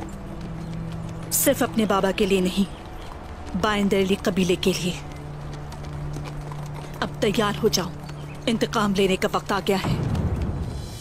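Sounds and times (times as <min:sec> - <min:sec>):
horse hooves clip-clopping: 0:00.0 - 0:11.0.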